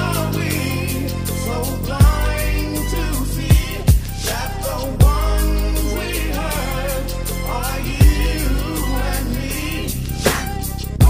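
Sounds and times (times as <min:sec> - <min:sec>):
deep bass line: 0:00.0 - 0:11.0
heavy bass hit: 0:00.0 - 0:11.0
song with sung vocals: 0:00.0 - 0:11.0.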